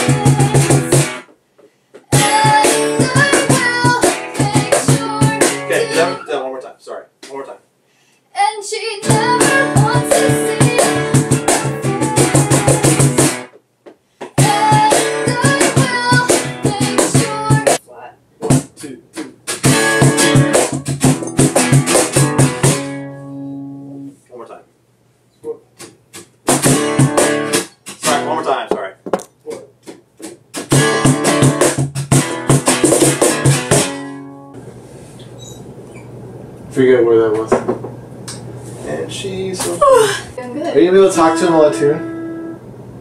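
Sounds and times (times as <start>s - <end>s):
woman singing: 0.0s - 1.2s, 2.1s - 6.2s, 8.4s - 13.2s, 14.4s - 17.8s
acoustic guitar strumming: 0.0s - 1.3s, 2.1s - 6.4s, 9.0s - 13.6s, 14.4s - 17.8s, 18.4s - 24.1s, 25.7s - 28.9s, 30.2s - 34.7s, 40.4s - 43.0s
box drum slapped by hand: 2.1s - 5.6s, 9.1s - 13.5s, 14.3s - 17.8s, 19.5s - 22.9s, 26.4s - 27.4s, 29.9s - 34.0s.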